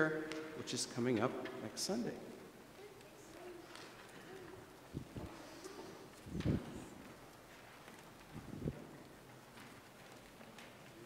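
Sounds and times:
faint room noise: 0.0 - 11.0
soft footsteps: 0.0 - 11.0.

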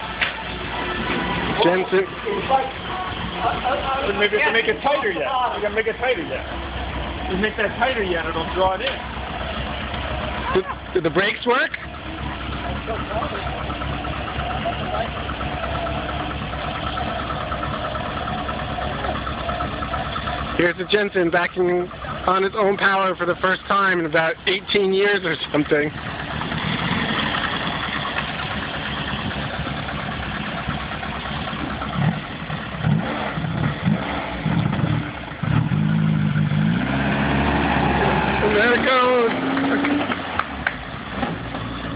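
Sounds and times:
car engine idling: 0.0 - 41.9.

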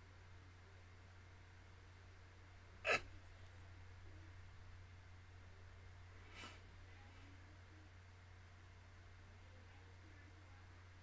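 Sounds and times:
low steady room hum: 0.0 - 11.0
person sharp breath: 6.2 - 6.7.

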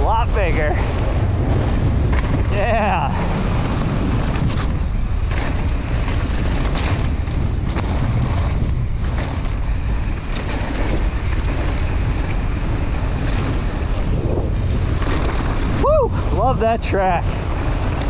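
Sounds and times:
bike rattles and knocks: 0.0 - 18.0
bike tyres rolling on gravel: 0.0 - 18.0
wind rushing over microphone: 0.0 - 18.0.

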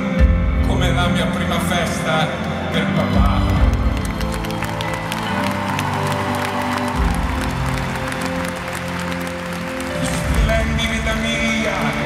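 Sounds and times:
live band playing chords: 0.0 - 12.0
crowd clapping and cheering: 1.8 - 12.0.

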